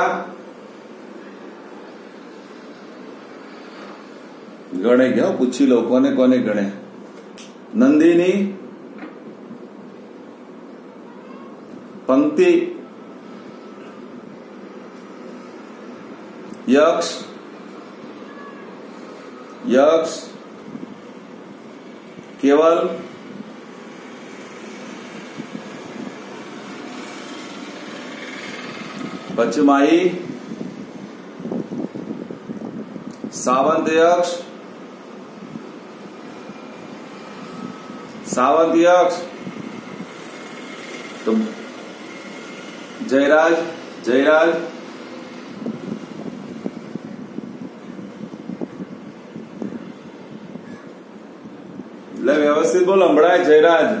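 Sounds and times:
low room noise: 0.0 - 54.0
steady background noise: 0.0 - 54.0.

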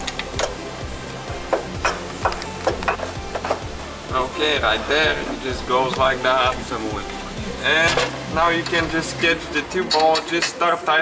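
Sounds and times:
background music: 0.0 - 11.0
clicks and knocks: 1.5 - 3.7.

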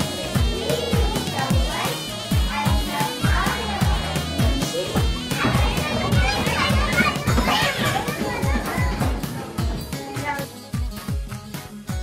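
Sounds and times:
children shouting and chattering: 0.0 - 10.6
music with thumping beat: 0.0 - 12.0.

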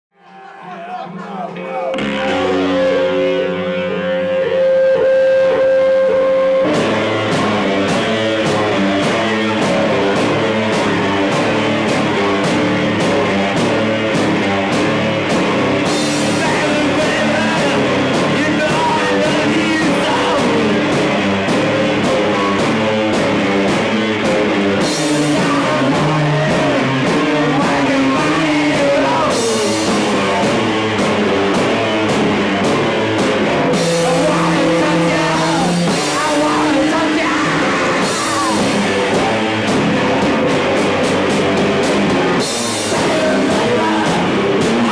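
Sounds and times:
rock band playing: 0.3 - 44.9
held electric guitar notes: 1.5 - 44.9.

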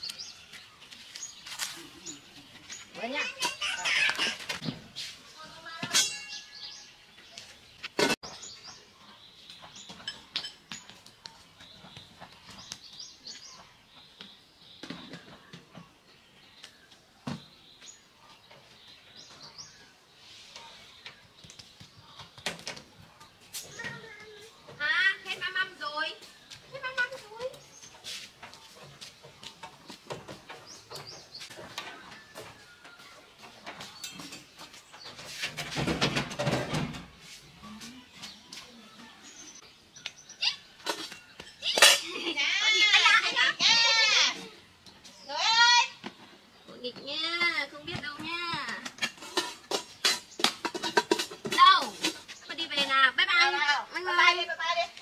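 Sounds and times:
birds chirping: 0.0 - 55.0
small child's voice: 23.7 - 24.6
metal table scraping on concrete: 48.8 - 52.9.

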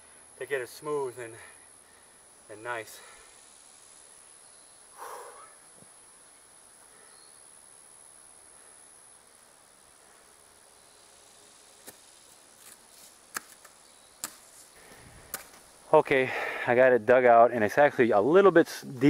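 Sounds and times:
shovel striking and scraping dirt: 12.6 - 14.7, 15.3 - 15.7.

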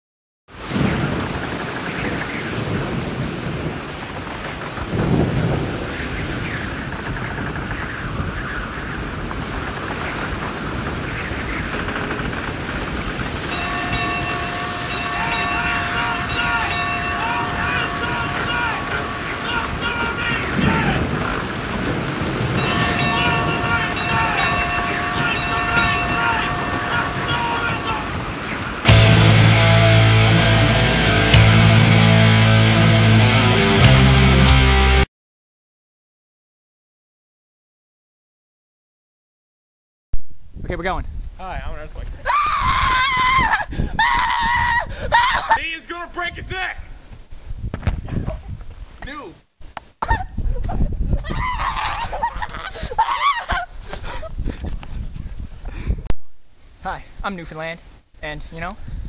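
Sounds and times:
rushing storm-like noise: 0.5 - 35.0
heavy metal music: 28.8 - 35.1.

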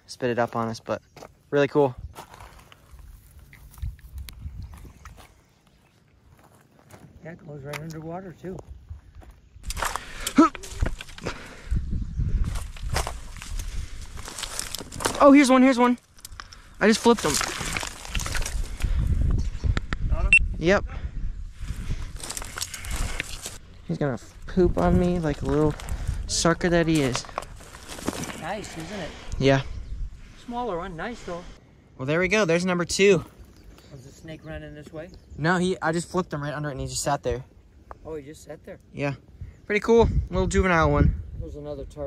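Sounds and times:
rustling through vegetation: 9.1 - 19.8, 21.5 - 31.6.

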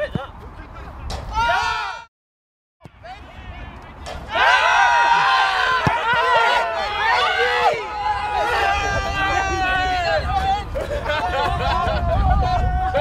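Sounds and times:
men shouting and cheering: 1.3 - 2.1, 3.1 - 13.0.

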